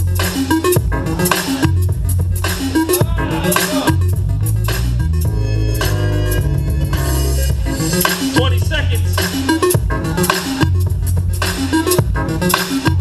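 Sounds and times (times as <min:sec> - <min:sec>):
loud dance music with heavy bass: 0:00.0 - 0:13.0.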